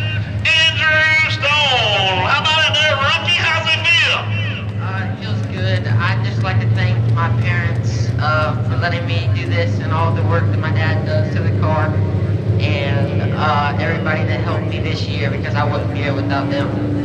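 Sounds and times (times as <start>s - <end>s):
people talking: 0.0s - 12.0s, 12.6s - 16.9s
low engine hum: 0.0s - 17.0s.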